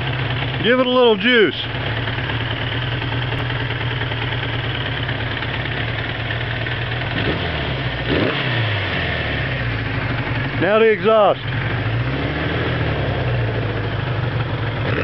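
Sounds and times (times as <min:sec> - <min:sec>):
motorcycle engine idling and revving: 0:00.0 - 0:15.0.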